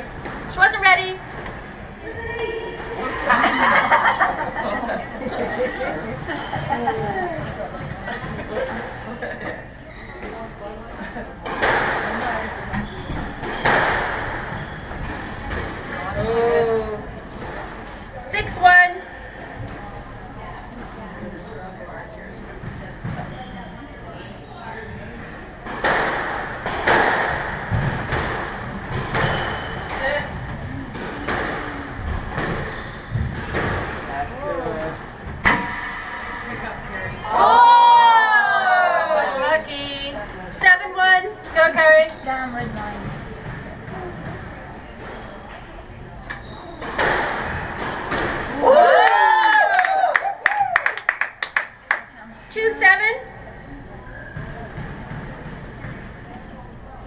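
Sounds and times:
squash ball hits echoing: 0:11.4 - 0:16.3, 0:25.6 - 0:36.7, 0:46.8 - 0:48.6.

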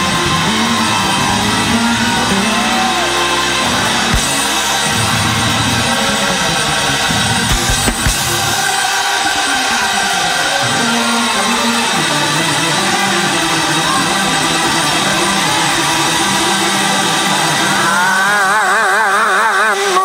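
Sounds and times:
gospel choir and band: 0:00.0 - 0:20.0.

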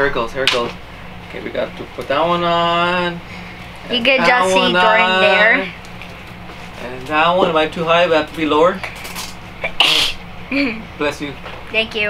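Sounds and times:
person sneezing: 0:09.6 - 0:10.2.

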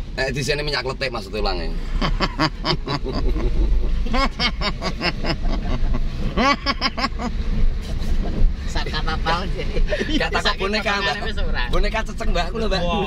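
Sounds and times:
car engine rumble and road noise: 0:00.0 - 0:13.0
men talking: 0:00.2 - 0:02.1, 0:08.7 - 0:13.0.

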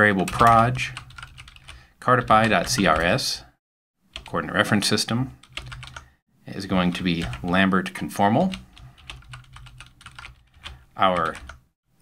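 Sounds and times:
computer keyboard keys clicking: 0:00.3 - 0:01.7, 0:05.4 - 0:06.0, 0:08.5 - 0:11.6.

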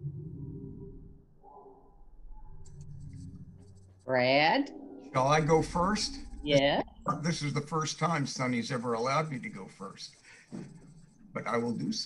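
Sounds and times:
low steady hum: 0:02.0 - 0:12.0.

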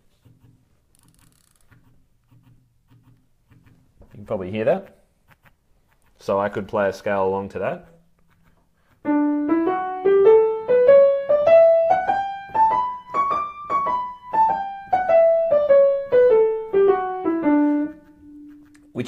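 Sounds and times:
piano playing a scale: 0:09.0 - 0:19.0.

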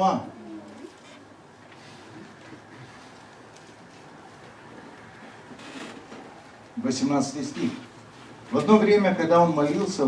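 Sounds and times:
microphone hiss: 0:00.0 - 0:10.0
rustling of book pages: 0:00.8 - 0:05.3.

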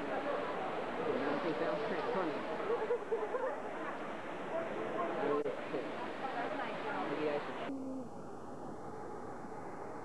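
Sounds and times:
people's voices: 0:00.0 - 0:09.3.

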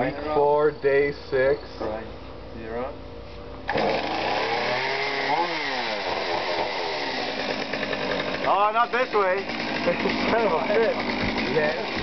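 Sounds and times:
chainsaw running at high throttle: 0:03.7 - 0:12.0.

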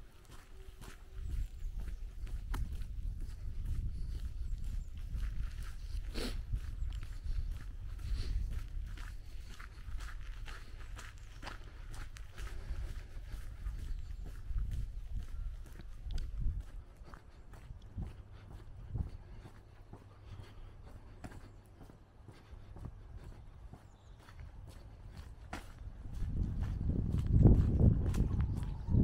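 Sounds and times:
wind rumbling on microphone: 0:00.0 - 0:21.4, 0:22.4 - 0:29.0
footsteps on wet asphalt: 0:00.0 - 0:29.0.

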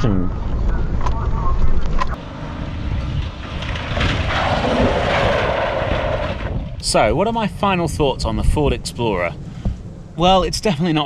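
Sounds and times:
car engine and road rumble: 0:00.0 - 0:11.0
rushing noise: 0:02.2 - 0:07.1.

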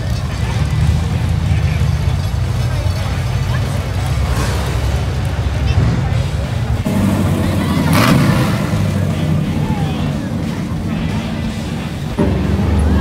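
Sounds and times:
car engine rumbling past: 0:00.0 - 0:13.0
crowd chatter: 0:00.0 - 0:13.0.

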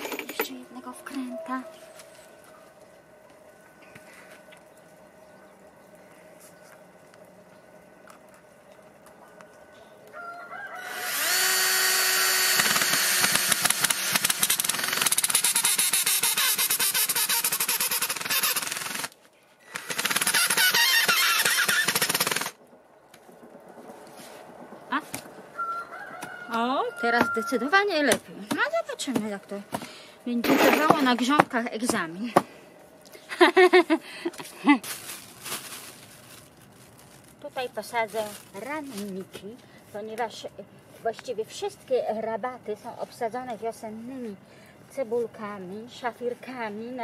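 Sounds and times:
cordless drill driving screw: 0:10.8 - 0:19.1, 0:19.7 - 0:22.5.

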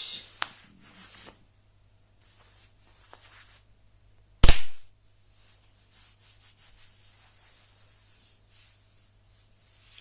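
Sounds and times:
faint rustling: 0:05.0 - 0:10.0.

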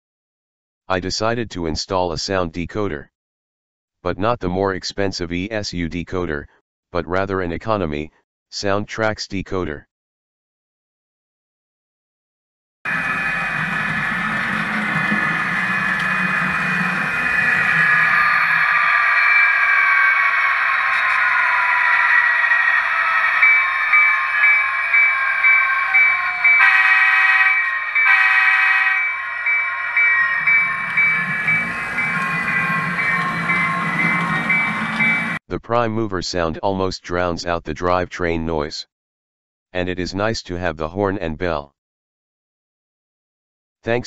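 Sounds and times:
horn blasts: 0:12.9 - 0:35.4
locomotive bell ringing: 0:12.9 - 0:35.4
model train motor and gears: 0:12.9 - 0:35.4
simulated diesel engine sound: 0:12.9 - 0:35.4.

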